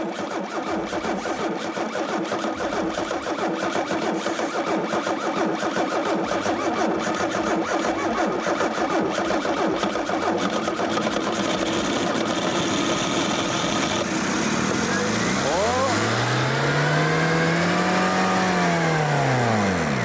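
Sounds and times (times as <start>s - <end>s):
car engine running with clatter: 0.0s - 20.0s.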